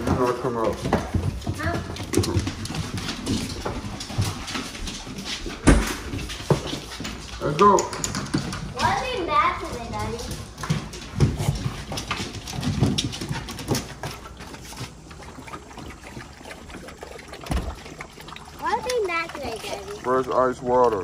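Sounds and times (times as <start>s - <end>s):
dog claws clicking on floor: 0.1s - 14.3s.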